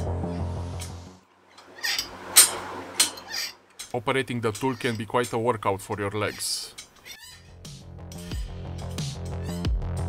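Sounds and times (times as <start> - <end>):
background music: 0.0 - 1.3, 7.5 - 10.0.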